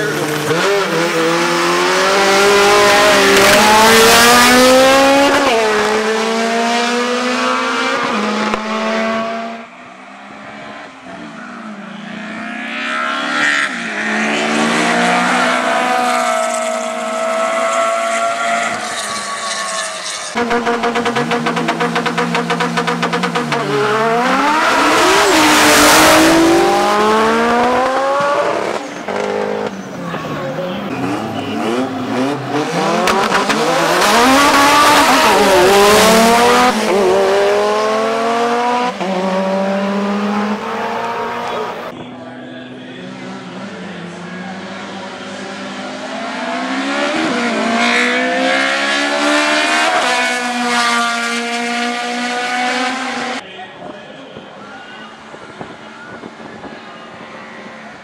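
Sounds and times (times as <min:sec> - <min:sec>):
drag car engines revving: 0:00.0 - 0:53.4.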